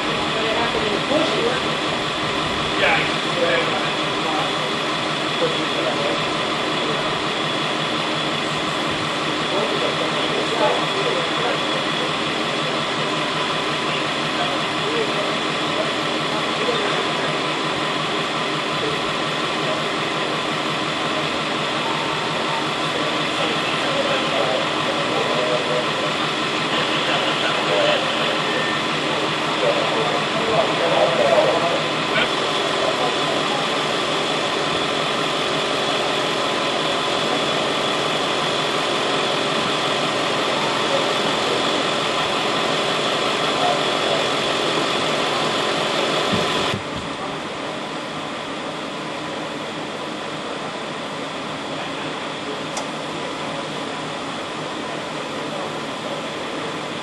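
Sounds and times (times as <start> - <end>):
engine idling hum: 0.0 - 57.0
indistinct voices talking: 0.0 - 57.0.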